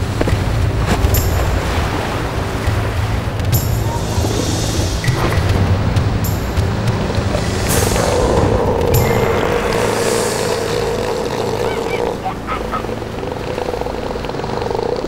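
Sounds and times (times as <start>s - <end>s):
elephant seals bellowing: 3.6s - 15.0s.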